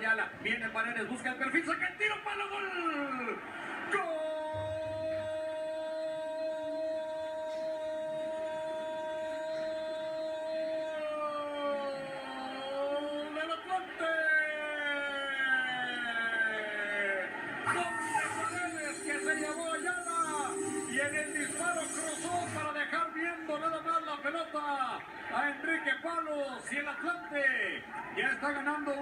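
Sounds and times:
commentator's drawn-out goal cry: 0:17.6 - 0:23.0.

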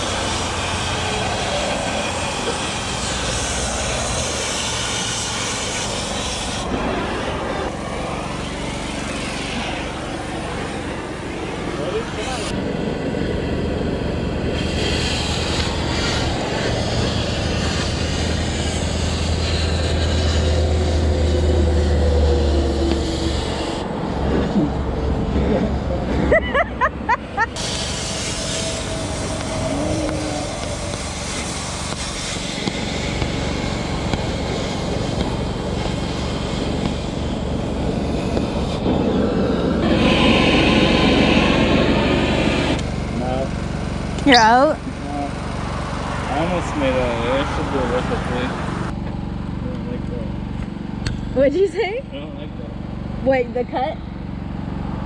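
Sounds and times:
cutting torch running: 0:00.0 - 0:49.0
low hum: 0:00.0 - 0:55.0.

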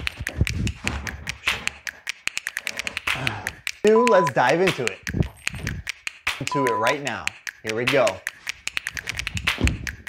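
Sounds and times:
sharp clicks and taps: 0:00.0 - 0:10.0
low thumps: 0:09.1 - 0:10.0.

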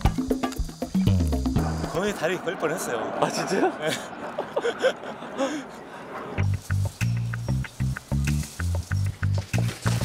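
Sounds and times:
music with staccato bass line: 0:00.0 - 0:02.0, 0:06.4 - 0:10.0.

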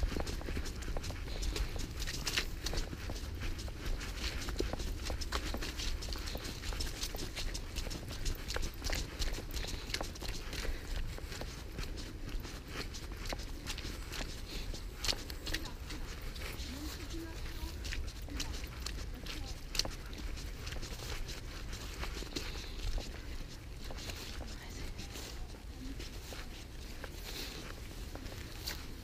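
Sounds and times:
footsteps on muddy path: 0:00.0 - 0:29.0.

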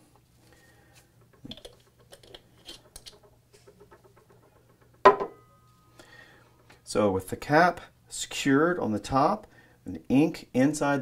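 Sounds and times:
screw cap clicking on threads: 0:01.4 - 0:03.3.

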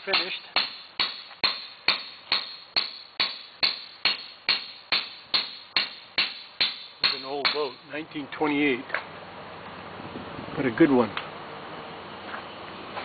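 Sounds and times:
mallet striking caulking iron: 0:00.0 - 0:07.8.

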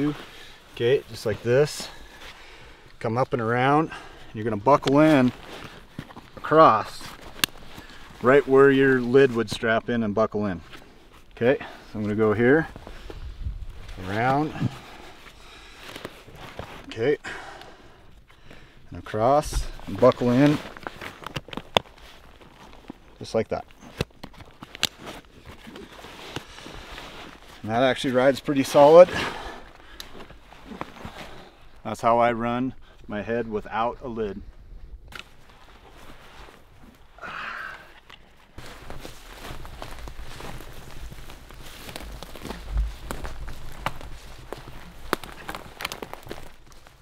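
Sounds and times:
footsteps through brush: 0:04.6 - 0:09.7, 0:19.2 - 0:32.4, 0:38.0 - 0:47.0
trekking pole clicks and knocks: 0:07.0 - 0:07.6
webbing being handled: 0:35.1 - 0:47.0.

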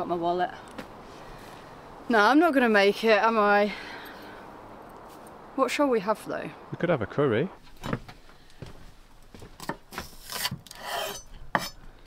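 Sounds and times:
knife scraping on board: 0:10.2 - 0:11.8.

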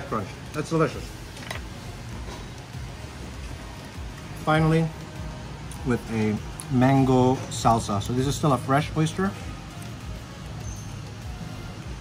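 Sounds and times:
faint music: 0:00.0 - 0:12.0
steady background noise: 0:00.0 - 0:12.0.

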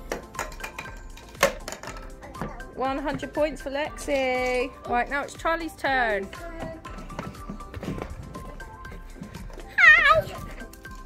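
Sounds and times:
upbeat electronic music: 0:00.0 - 0:11.0.

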